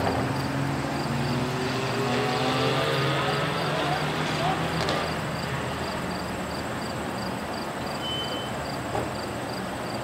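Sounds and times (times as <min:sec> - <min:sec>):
distant car engine accelerating: 0:00.0 - 0:07.6.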